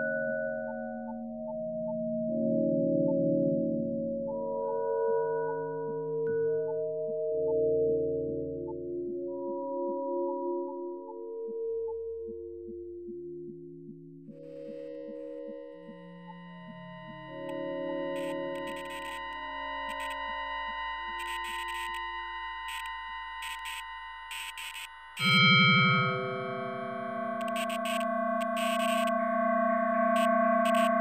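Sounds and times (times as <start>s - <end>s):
steady ticking pulse: 12.6s - 31.0s
sustained pure tones: 14.5s - 31.0s
high steady tones: 15.8s - 31.0s.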